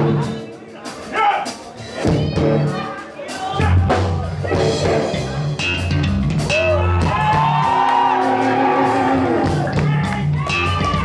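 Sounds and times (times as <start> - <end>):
electric bass: 3.6 - 11.0.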